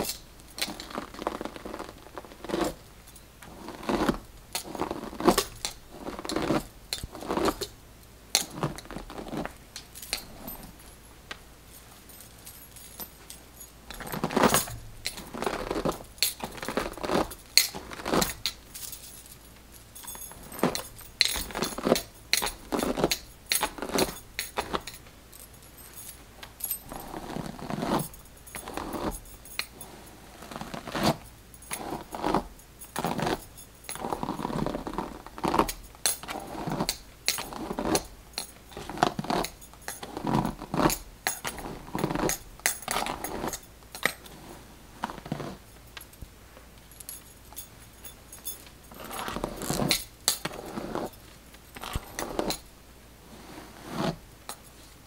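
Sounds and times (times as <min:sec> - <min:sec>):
beaded bracelets jingling: 0:08.4 - 0:44.3, 0:46.9 - 0:52.7.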